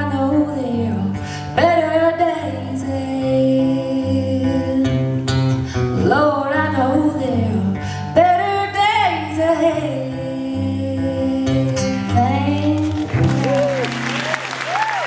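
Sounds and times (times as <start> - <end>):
woman singing: 0.0 - 13.4
strummed acoustic guitars: 6.8 - 14.4.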